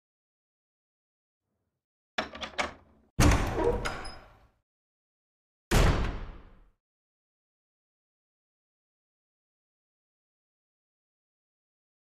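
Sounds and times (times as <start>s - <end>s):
heavy wooden door slamming: 3.2s - 4.3s.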